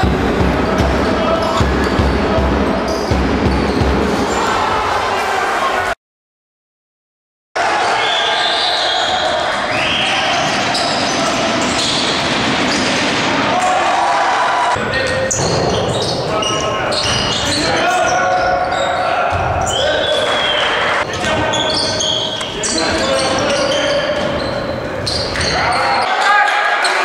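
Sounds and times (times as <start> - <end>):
players and spectators voices: 0.0 - 6.0, 7.6 - 27.0.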